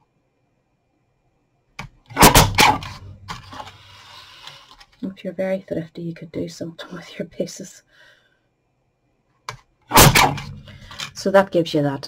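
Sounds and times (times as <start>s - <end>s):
paper cutter snapping through card: 2.1s - 3.7s
card rustling: 2.8s - 4.9s.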